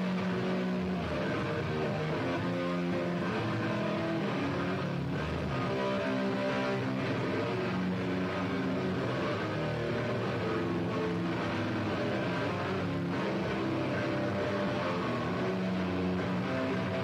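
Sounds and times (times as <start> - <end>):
distorted electric guitars: 0.0 - 17.0
rock band playing live: 0.0 - 17.0.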